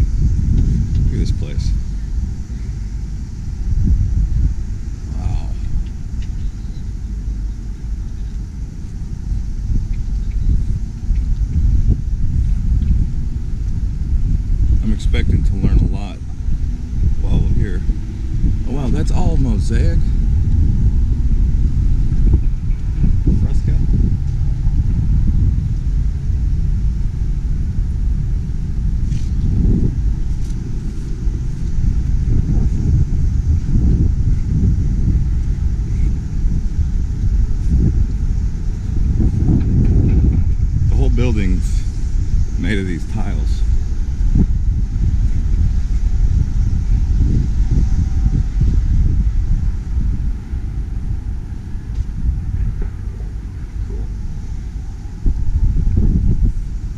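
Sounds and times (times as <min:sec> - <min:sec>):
steady low rumble: 0:00.0 - 0:56.9.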